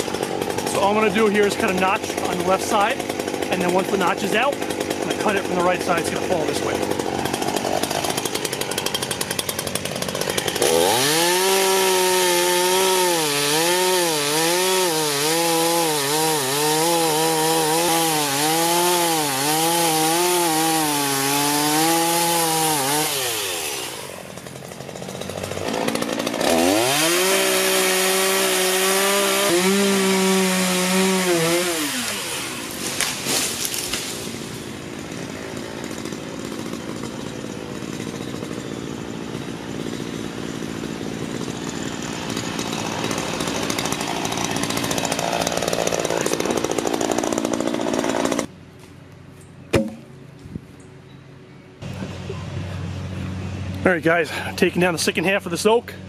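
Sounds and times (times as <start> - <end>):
chainsaw revving and cutting wood: 0.0 - 48.5, 51.8 - 56.0.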